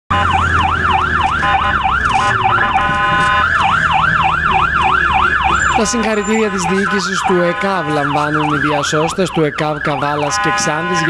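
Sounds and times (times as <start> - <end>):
ambulance siren yelping: 0.1 - 11.0.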